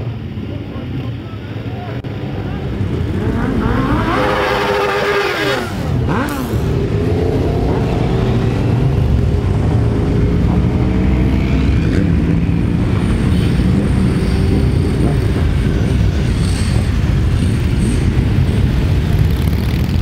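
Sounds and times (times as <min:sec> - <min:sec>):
motorcycle engines droning: 0:00.0 - 0:20.0
motorcycles revving: 0:00.0 - 0:20.0.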